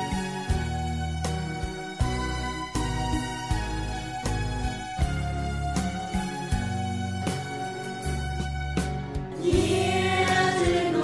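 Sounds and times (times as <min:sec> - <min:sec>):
instrumental accompaniment: 0:00.0 - 0:11.0
choir-like singing: 0:09.4 - 0:11.0.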